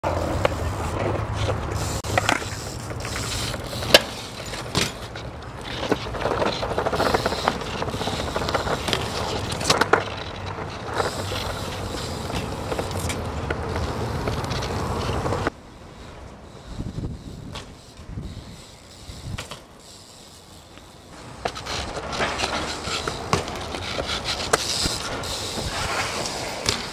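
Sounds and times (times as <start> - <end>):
bike rattling and clicking: 0.0 - 26.9
bike tyres rolling on pavement: 0.0 - 26.9.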